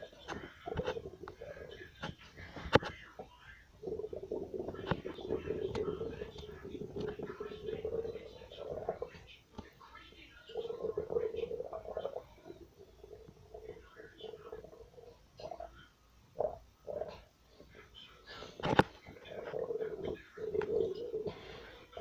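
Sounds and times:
stomach gurgling: 0.0s - 22.0s.

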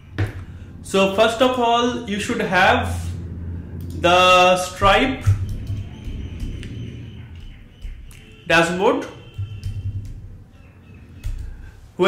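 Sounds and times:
steady low hum: 0.0s - 12.0s
computer keys typing: 5.2s - 8.4s, 9.2s - 11.6s.

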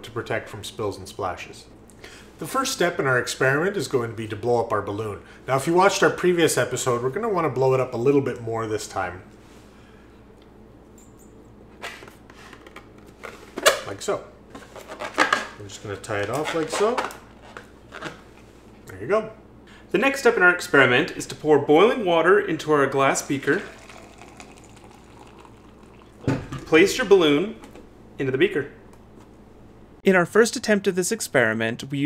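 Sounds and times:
water pouring into glass: 23.2s - 26.6s.

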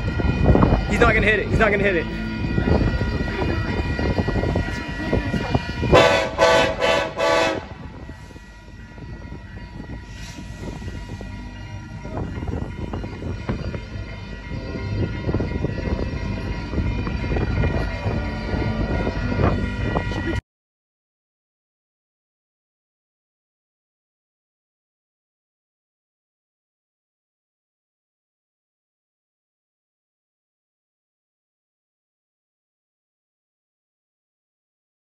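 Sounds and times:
freight train rumbling while braking: 0.0s - 20.4s
locomotive horn short blasts: 5.9s - 8.0s.

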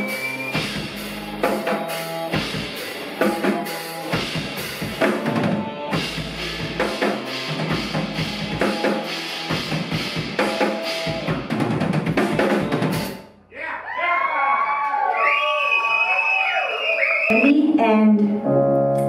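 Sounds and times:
drum kit played hard: 0.0s - 13.3s
audience whooping: 13.6s - 17.6s.

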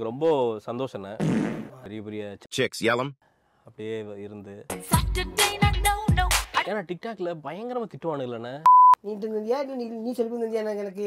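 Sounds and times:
censor bleep: 8.7s - 9.0s.

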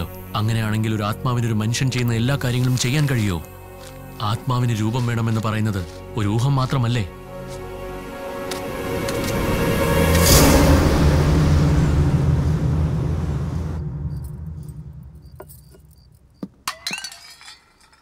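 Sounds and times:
dramatic rushing swell over drone: 7.7s - 15.4s.

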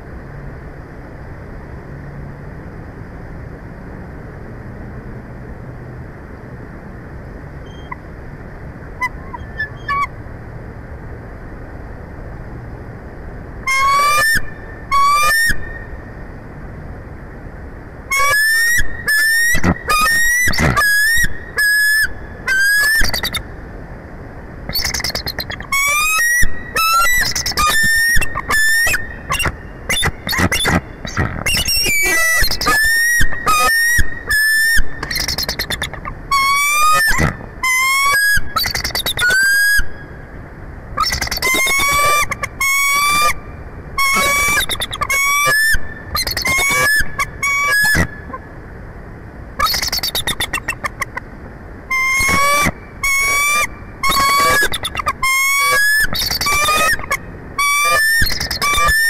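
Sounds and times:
eagles high-pitched piping chatter: 13.7s - 15.6s, 24.7s - 39.8s, 41.0s - 43.3s, 44.0s - 48.4s, 49.6s - 51.2s, 51.9s - 59.0s.

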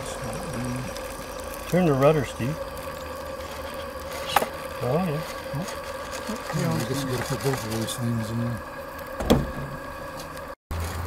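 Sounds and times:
model steam engine running: 0.0s - 10.5s.

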